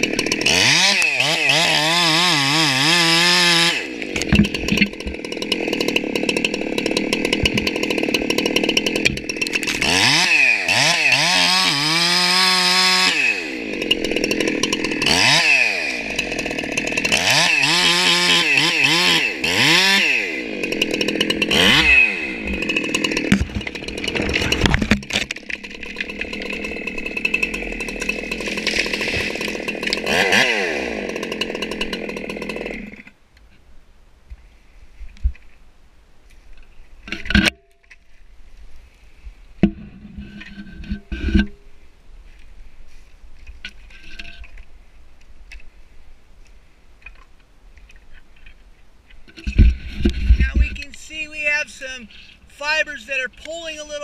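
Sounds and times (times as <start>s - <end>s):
chainsaw cutting under load: 0.0s - 33.2s, 49.3s - 54.0s.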